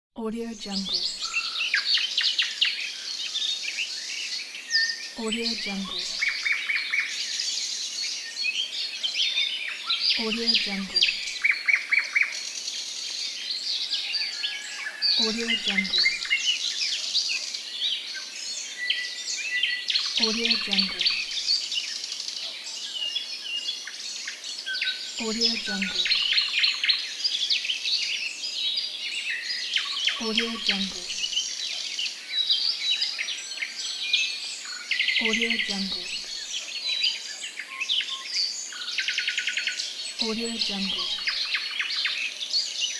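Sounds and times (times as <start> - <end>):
songbirds singing and chirping: 0.4 - 42.9.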